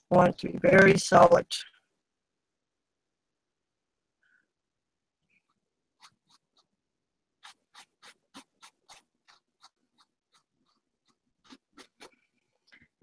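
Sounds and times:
paintbrush scratching on fabric: 5.3 - 12.8.

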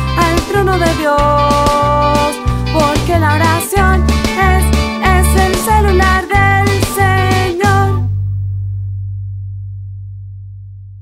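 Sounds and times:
deep bass note: 2.5 - 11.0.

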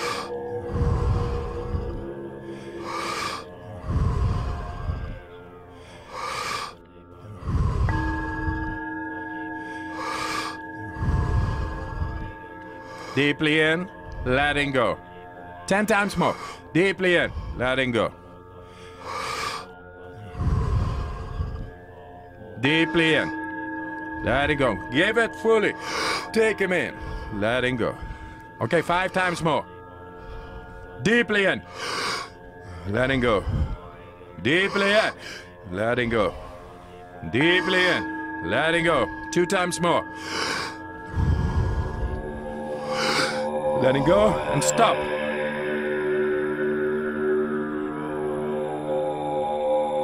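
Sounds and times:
background music with held tones: 0.0 - 50.0
man breathing in and out: 0.0 - 50.0.

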